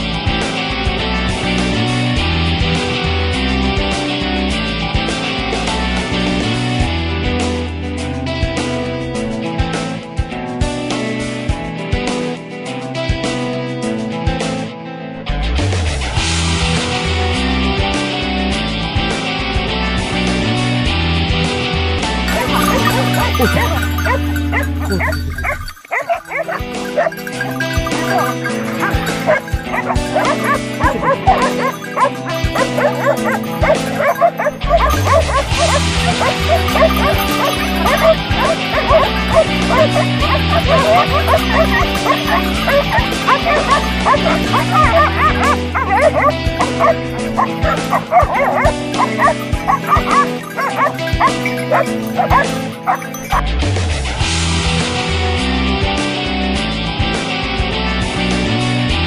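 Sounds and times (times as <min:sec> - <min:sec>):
background music: 0:15.3 - 0:59.0
dogs barking and yelping: 0:22.2 - 0:53.6.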